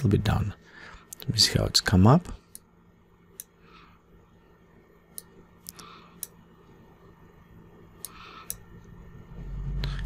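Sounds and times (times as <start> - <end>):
computer mouse clicks: 8.0 - 8.6
low rumble: 8.8 - 10.0.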